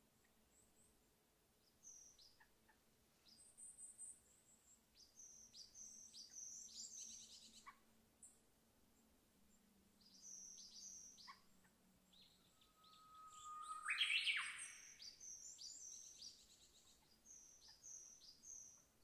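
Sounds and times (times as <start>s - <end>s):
birds whistling downward notes: 12.4s - 16.2s
bird call sweeping upward: 12.6s - 15.0s.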